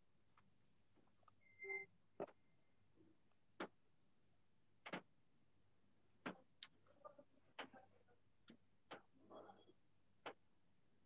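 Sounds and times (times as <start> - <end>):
faint squeak: 1.4 - 1.9.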